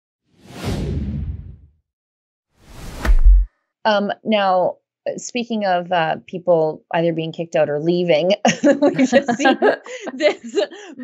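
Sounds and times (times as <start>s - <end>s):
whoosh with deep rumble: 0.4s - 1.7s, 2.6s - 3.5s.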